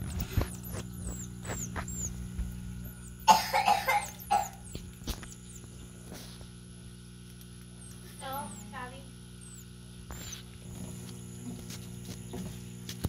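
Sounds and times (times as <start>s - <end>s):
person coughing: 3.2s - 4.7s.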